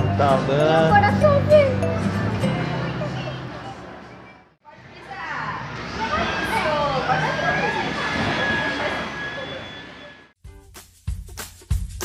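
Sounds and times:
music with a beat: 10.4 - 12.0.

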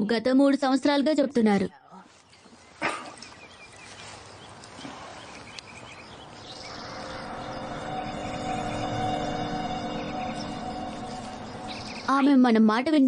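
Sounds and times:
eerie music: 6.3 - 12.7.

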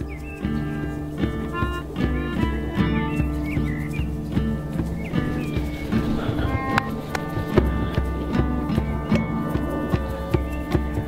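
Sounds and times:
hand drum beat: 0.0 - 11.0
melodica notes: 0.7 - 3.4.

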